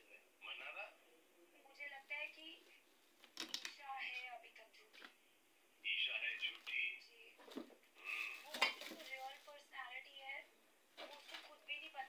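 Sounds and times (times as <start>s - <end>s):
voices talking: 5.8s - 10.4s
metal kitchenware clattering: 8.5s - 9.0s.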